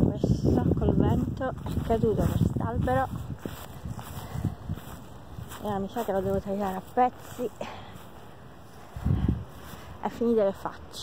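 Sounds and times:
wind rumble on microphone: 0.0s - 7.5s, 8.4s - 11.0s.

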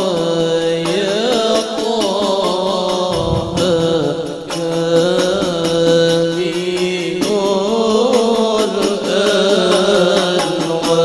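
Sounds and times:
man chanting over loudspeaker: 0.0s - 11.0s.

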